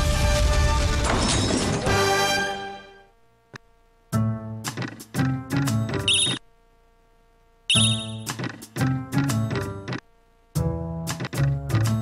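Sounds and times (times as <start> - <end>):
slot game jingle: 5.9 - 6.4, 7.7 - 8.4.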